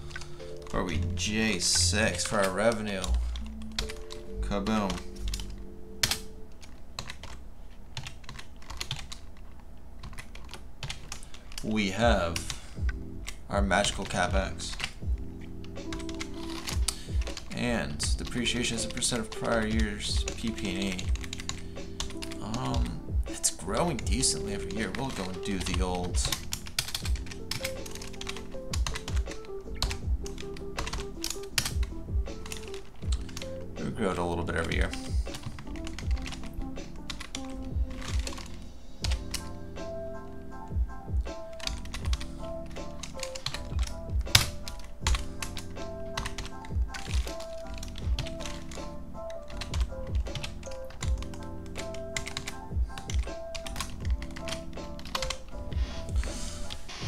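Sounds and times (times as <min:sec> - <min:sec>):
background music: 0:00.0 - 0:57.0
typing on computer keyboard: 0:02.1 - 0:11.7, 0:12.3 - 0:17.6, 0:18.2 - 0:23.0, 0:24.0 - 0:33.7, 0:34.6 - 0:39.6, 0:41.1 - 0:55.6.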